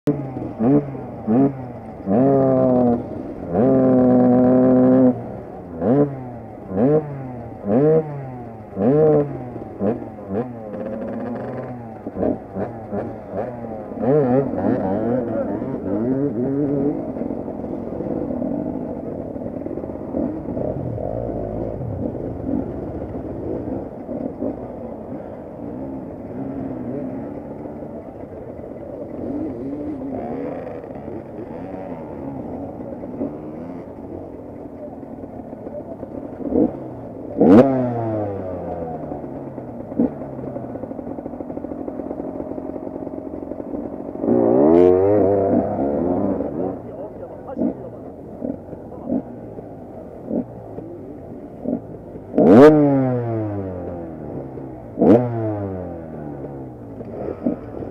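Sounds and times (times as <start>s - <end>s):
dirt bike engines idling and revving: 0.0s - 57.9s.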